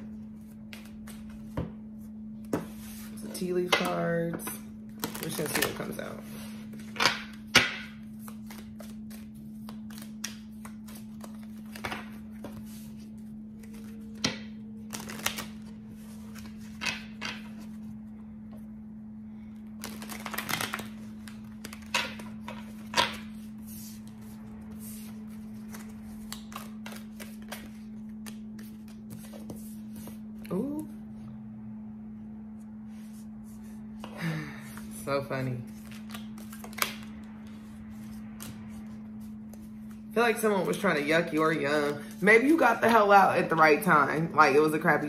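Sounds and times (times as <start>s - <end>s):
steady low hum: 0.0s - 45.0s
cards being shuffled: 0.4s - 1.7s, 4.9s - 17.8s, 19.8s - 30.9s, 35.6s - 42.5s.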